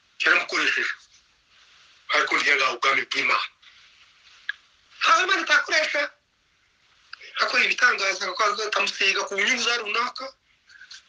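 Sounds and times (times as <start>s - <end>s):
faint hiss: 0.0s - 11.0s
man speaking: 0.2s - 1.0s, 2.1s - 3.6s, 5.0s - 6.2s, 7.2s - 10.4s.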